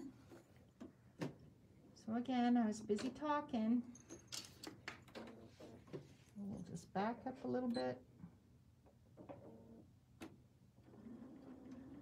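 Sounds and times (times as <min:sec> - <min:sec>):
faint handling sounds: 0:03.8 - 0:06.8.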